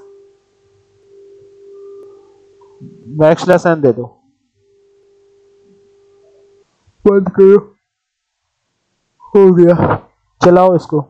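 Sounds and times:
faint steady hum: 0.0s - 11.0s
low background hiss: 0.0s - 11.0s.

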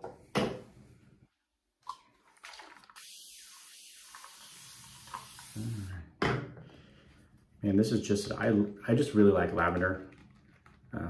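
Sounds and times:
sink tap running: 3.0s - 5.6s.

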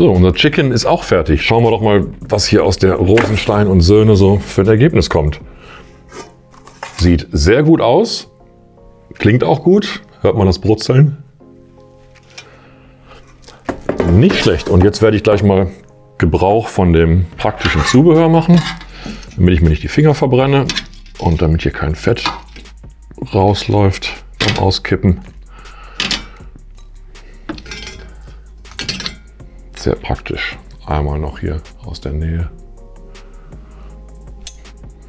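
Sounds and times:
metal tongs clinking on basket: 26.0s - 28.1s, 28.7s - 29.3s.

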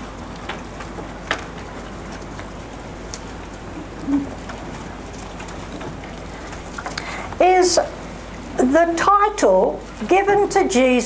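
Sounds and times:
book pages turning: 0.0s - 7.1s
microphone hiss: 0.0s - 11.0s.

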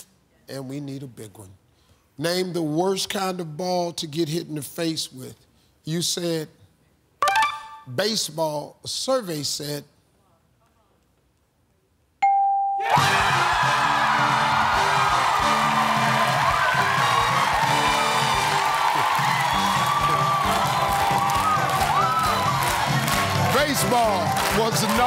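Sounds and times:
celebratory win music: 7.2s - 7.9s, 12.8s - 25.0s
electronic ding: 12.2s - 12.9s
audience cheering and whooping: 12.8s - 25.0s.

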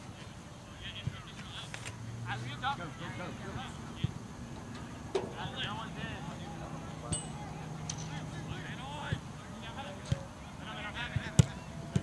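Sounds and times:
distant players shouting: 2.2s - 12.0s.

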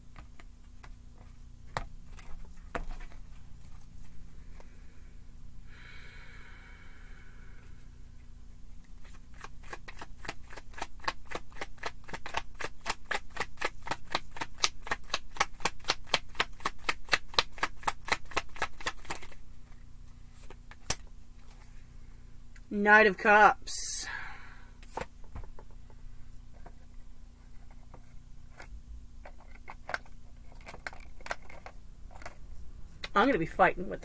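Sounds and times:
rapid clicks of cards shuffling: 8.9s - 21.7s, 24.8s - 25.8s, 27.4s - 32.5s.

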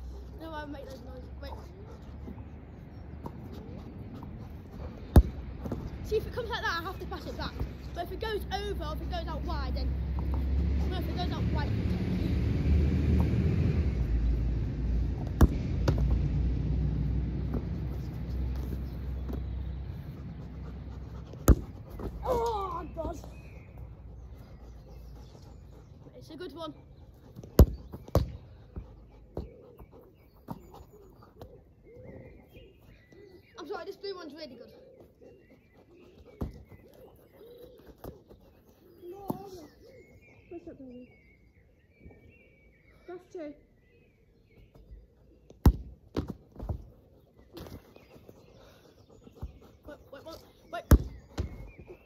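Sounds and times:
football kicked thuds: 5.1s - 5.9s, 15.2s - 16.1s, 21.4s - 22.3s, 27.6s - 28.4s, 45.6s - 46.8s, 50.9s - 51.6s
low rumble: 11.4s - 20.2s.

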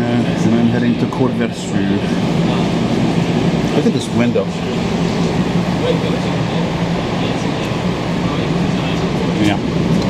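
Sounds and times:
metro car hum and rumble: 0.0s - 10.0s.

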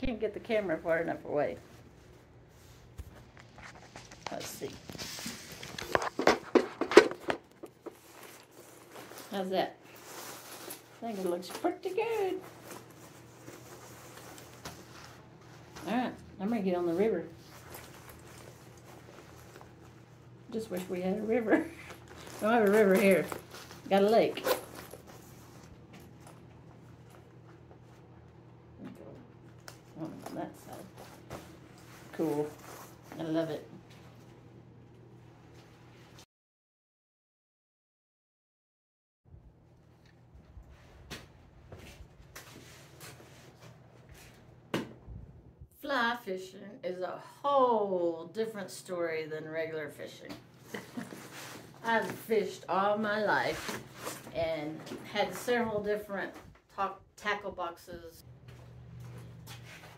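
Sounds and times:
woman speaking: 0.0s - 1.6s, 4.2s - 5.0s, 9.3s - 9.8s, 11.0s - 12.5s, 15.8s - 17.4s, 20.5s - 24.6s, 28.8s - 29.3s, 29.9s - 31.0s, 32.1s - 33.8s, 45.8s - 51.0s, 51.8s - 58.2s
low steady background hum: 0.0s - 36.2s, 39.3s - 59.9s
fishing vest clicks and rustles: 2.8s - 15.9s, 17.4s - 20.2s, 21.5s - 28.0s.

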